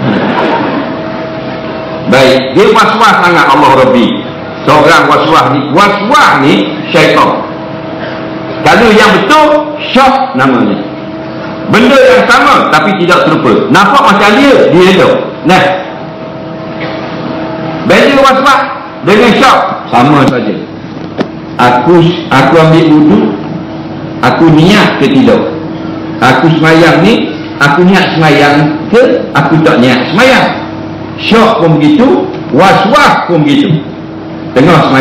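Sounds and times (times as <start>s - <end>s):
faint steady hum: 0.0s - 35.0s
steady background noise: 0.0s - 35.0s
steady low drone: 0.0s - 35.0s.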